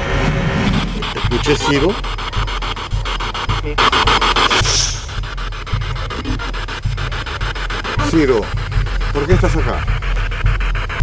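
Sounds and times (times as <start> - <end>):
dark music with pulsing beat: 0.0 - 11.0.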